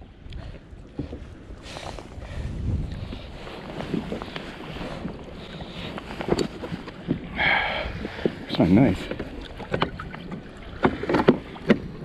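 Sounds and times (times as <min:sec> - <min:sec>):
water sloshing: 0:00.4 - 0:12.0.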